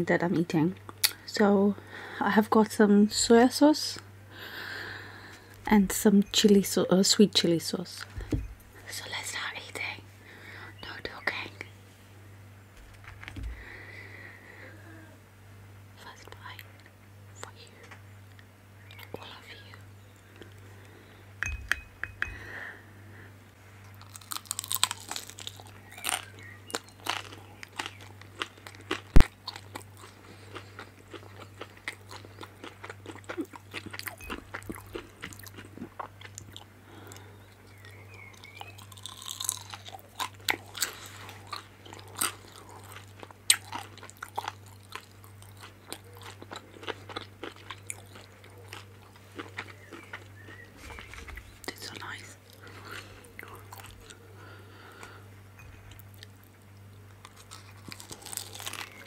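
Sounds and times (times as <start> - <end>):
steady low hum: 0.0 - 59.0
crunchy biting and chewing: 23.9 - 55.2, 55.9 - 59.0.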